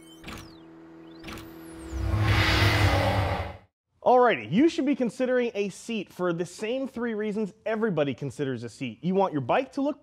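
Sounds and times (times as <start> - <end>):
synthesized pitch sweeps: 0.0 - 3.7
loud whooshing rumble: 1.8 - 3.7.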